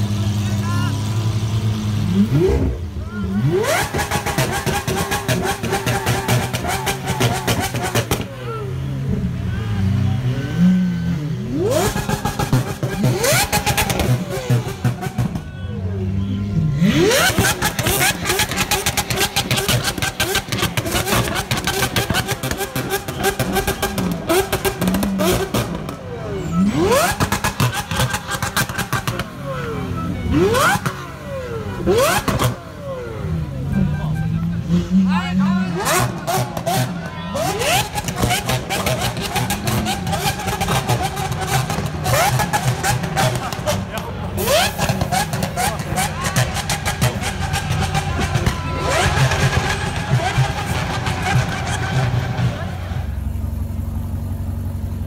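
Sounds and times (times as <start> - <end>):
crowd voices: 0.0 - 55.0
sports car engines revving: 0.0 - 55.0.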